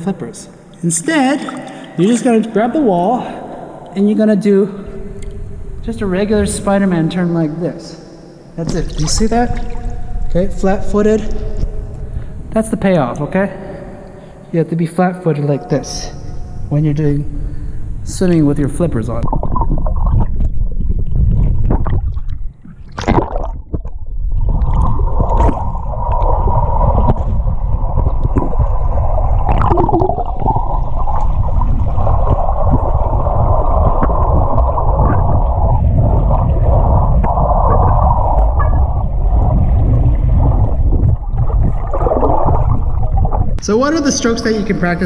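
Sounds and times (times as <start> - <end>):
underwater water rush and gurgle: 19.2 - 43.7.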